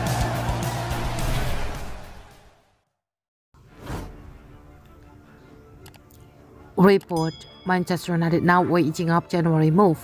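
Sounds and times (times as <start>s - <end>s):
swoosh transition effect: 0.7s - 2.7s
quiet background music: 3.6s - 10.0s.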